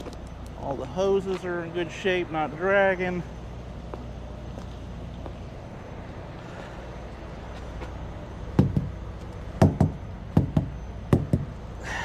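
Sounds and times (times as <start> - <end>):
truck idling: 0.0 - 12.0
sharp knocks in pairs: 8.6 - 9.0, 9.6 - 11.5.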